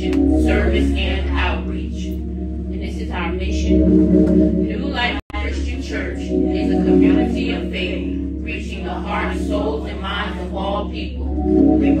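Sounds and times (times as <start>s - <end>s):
held organ chord: 0.0s - 12.0s
congregation singing in unison: 5.4s - 12.0s.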